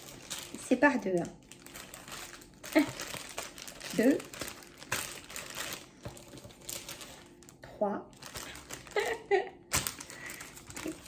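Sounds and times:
plastic packets crinkling: 0.0s - 11.0s.

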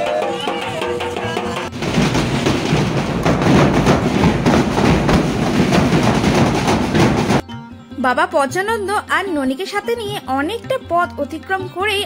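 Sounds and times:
street band percussion music: 0.0s - 7.4s.

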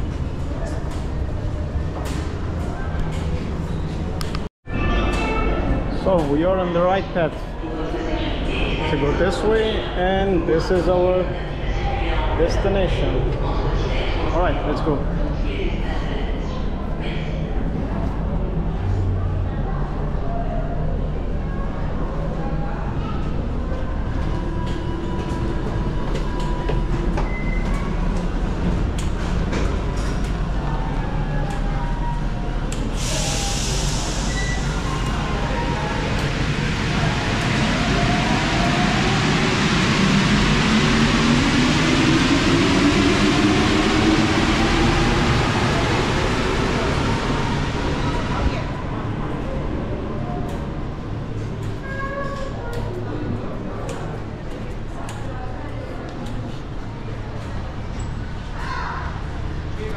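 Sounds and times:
low rumble: 21.2s - 52.0s
train rolling hiss: 32.8s - 48.6s.

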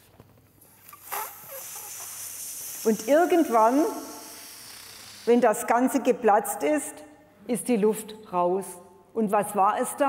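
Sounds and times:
air hissing out of balloon: 0.6s - 5.7s.

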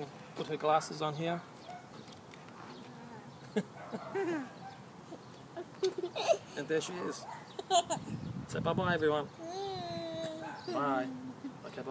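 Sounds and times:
laugh-like vocal call: 3.4s - 6.5s.

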